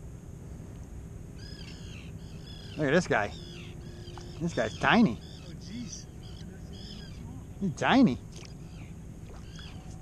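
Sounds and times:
low background rumble: 0:00.0 - 0:10.0
bird calling harshly: 0:01.4 - 0:07.4, 0:08.3 - 0:10.0.

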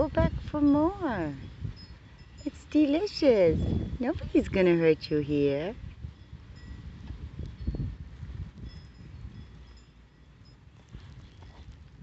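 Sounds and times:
microphone rumble and thumps: 0:00.0 - 0:01.8.

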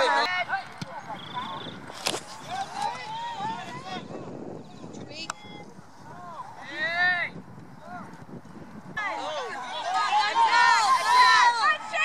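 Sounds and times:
people shouting across a field: 0:02.5 - 0:04.2, 0:09.0 - 0:12.0.

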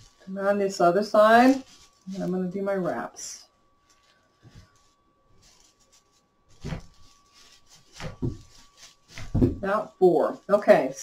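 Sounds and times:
broomcorn bundle rustling: 0:00.0 - 0:11.0.

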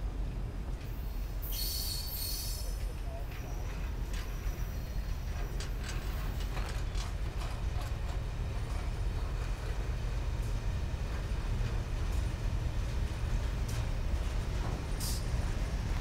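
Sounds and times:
low train rumble: 0:00.0 - 0:16.0
train wheels clanking on rails: 0:00.8 - 0:16.0.

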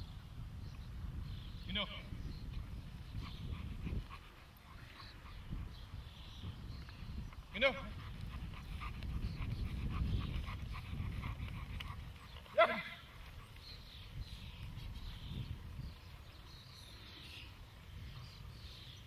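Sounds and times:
dog panting: 0:03.1 - 0:06.1, 0:07.8 - 0:13.7.

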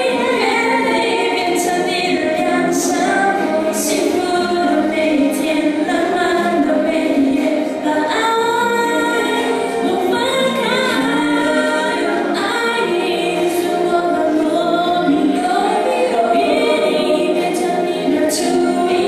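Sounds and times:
karaoke backing track: 0:00.0 - 0:19.0
women singing pop duet: 0:00.0 - 0:19.0.

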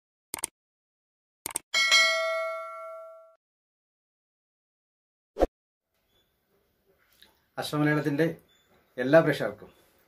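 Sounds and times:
bright bell ding: 0:01.8 - 0:03.4.

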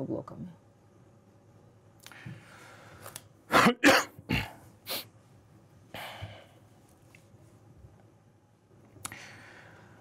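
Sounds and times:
person coughing: 0:03.5 - 0:04.6.

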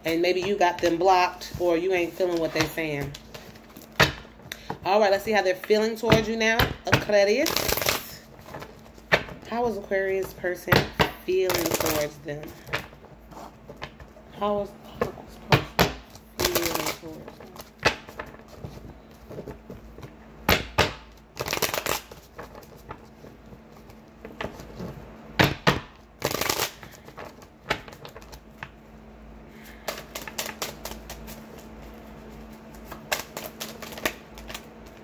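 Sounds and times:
cards being shuffled: 0:00.0 - 0:06.4, 0:07.0 - 0:10.4, 0:11.0 - 0:14.2, 0:15.0 - 0:28.9, 0:29.6 - 0:35.0.

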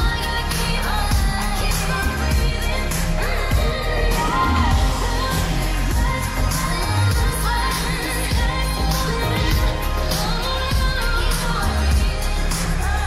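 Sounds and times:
pop song with vocals: 0:00.0 - 0:13.0.

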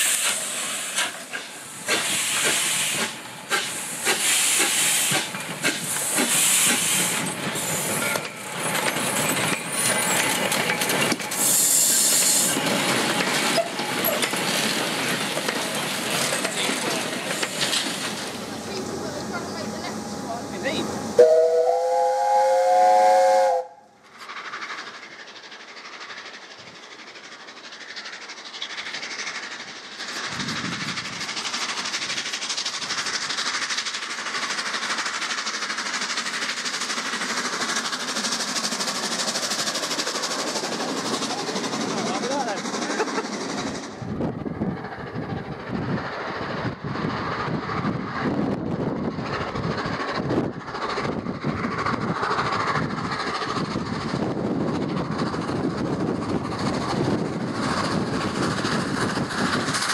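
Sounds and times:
steam locomotive exhaust: 0:00.0 - 0:59.9
steam locomotive whistle: 0:21.2 - 0:23.9.

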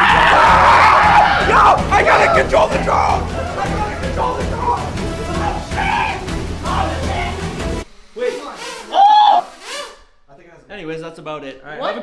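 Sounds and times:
background music: 0:00.0 - 0:09.9.

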